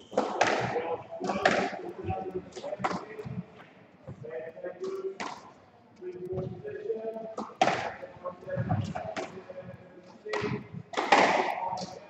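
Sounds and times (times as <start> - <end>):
squash ball knocking: 7.4 - 9.4, 10.3 - 12.0.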